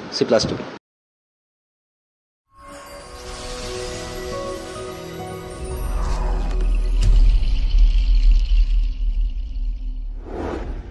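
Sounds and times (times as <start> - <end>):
hissing shimmer: 2.6 - 10.3.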